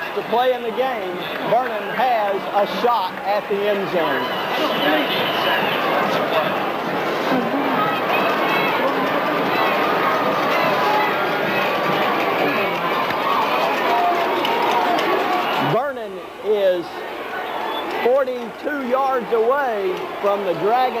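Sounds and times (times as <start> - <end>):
stadium crowd shouting: 0.0 - 21.0.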